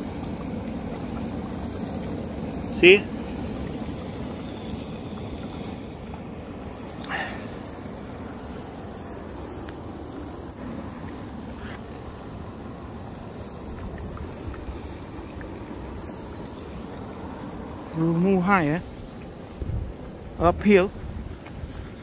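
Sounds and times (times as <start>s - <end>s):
boiling mud pool churning: 0.0s - 22.0s.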